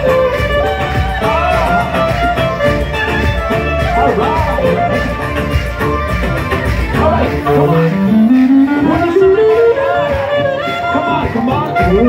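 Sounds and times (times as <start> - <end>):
drum kit: 0.0 - 12.0
guitar: 0.0 - 12.0
violin: 0.0 - 12.0.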